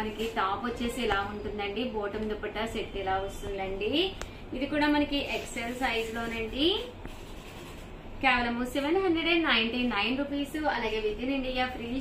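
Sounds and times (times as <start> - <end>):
woman speaking: 0.0 - 7.0, 8.2 - 12.0
faint background noise: 0.0 - 12.0.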